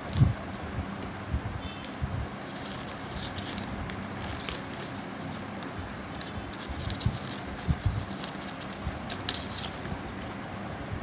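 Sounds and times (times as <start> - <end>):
faint steady hum: 0.0 - 11.0
plastic strips rustling and clicking: 1.8 - 10.0.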